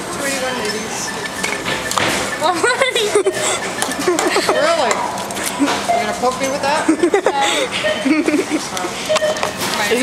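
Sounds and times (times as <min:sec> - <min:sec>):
supermarket checkout background noise: 0:00.0 - 0:10.0.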